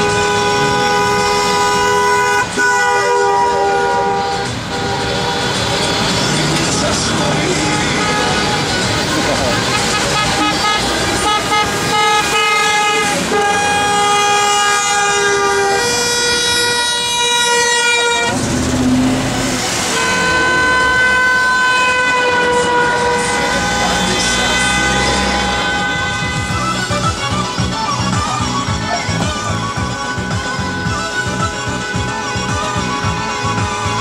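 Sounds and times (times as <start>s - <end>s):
car horns honking: 0.0s - 34.0s.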